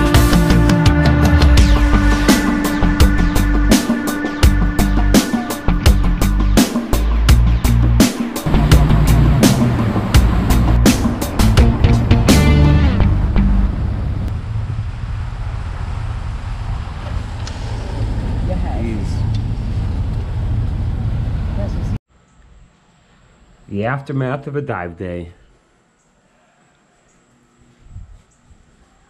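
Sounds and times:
music with a steady beat: 0:00.0 - 0:13.6
falling sweep: 0:08.4 - 0:13.0
boat engine running: 0:08.4 - 0:22.0
wind on microphone: 0:27.8 - 0:28.8.

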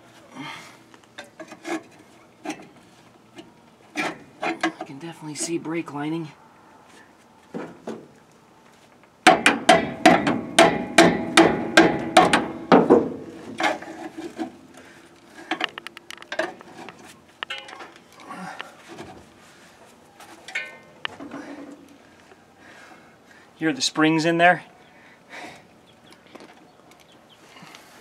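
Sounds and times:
hammer striking metal brake drum: 0:09.3 - 0:13.2
brake drum ringing: 0:09.3 - 0:13.3.

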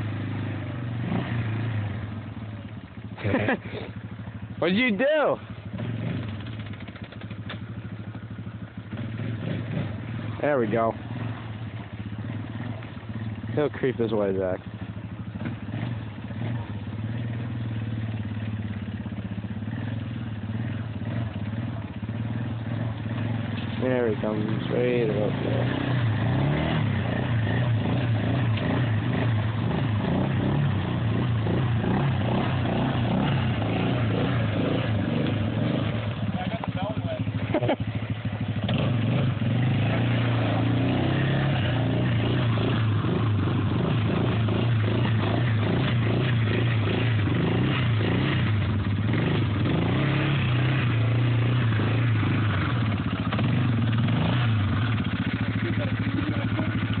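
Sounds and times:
quad bike engine running: 0:00.0 - 0:57.0.

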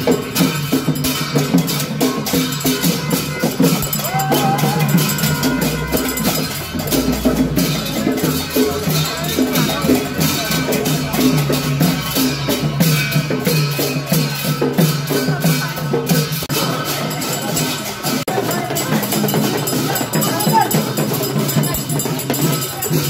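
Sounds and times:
drums and percussion rhythm: 0:00.0 - 0:23.0.

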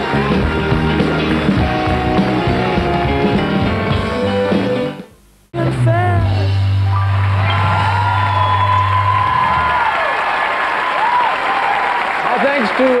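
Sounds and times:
audience applauding: 0:00.0 - 0:03.2, 0:06.9 - 0:13.0
long falling whistles: 0:07.4 - 0:10.1.

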